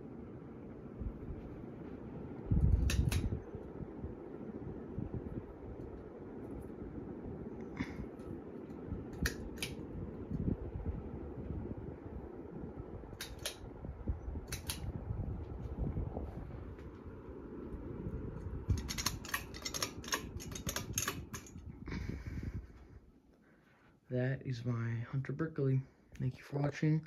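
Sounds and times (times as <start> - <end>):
ceiling fan air rush: 0.0 - 27.0
sharp clicks: 2.7 - 3.5, 8.7 - 9.8, 13.1 - 13.7, 14.4 - 15.0, 18.7 - 21.6.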